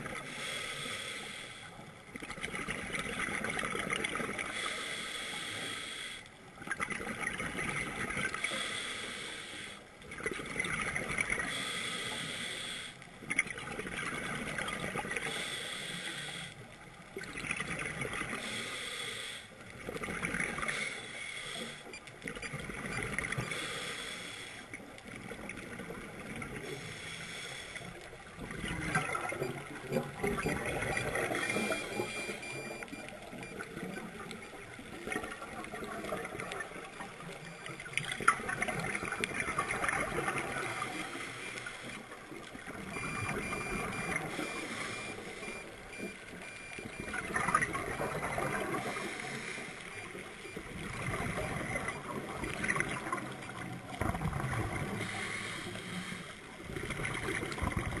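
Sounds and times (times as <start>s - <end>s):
regulator bubbles gurgling underwater: 0.0s - 58.0s.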